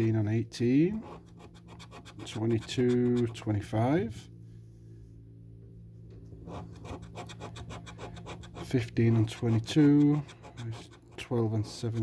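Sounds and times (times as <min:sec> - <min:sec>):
coin scratching a scratch card: 0:01.0 - 0:03.6, 0:06.5 - 0:12.0.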